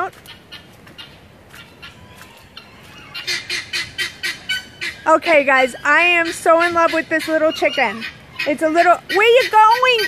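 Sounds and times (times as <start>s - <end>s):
poultry calling: 0.2s - 10.0s
rapid harsh poultry calls: 0.3s - 10.0s.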